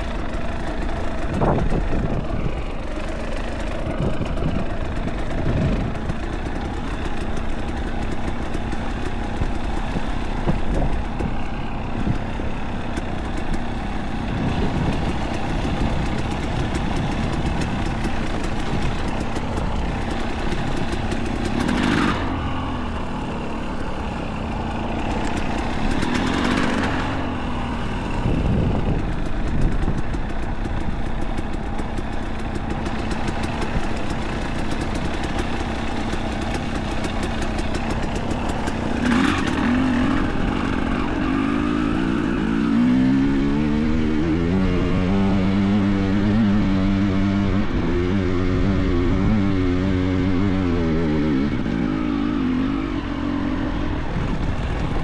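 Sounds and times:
motorcycle engine revving: 0.0s - 55.0s.

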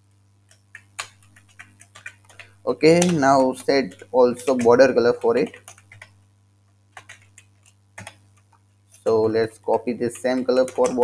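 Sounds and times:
steady low hum: 0.0s - 11.0s
computer keyboard keystrokes: 0.5s - 6.2s, 7.0s - 9.2s, 9.8s - 11.0s.

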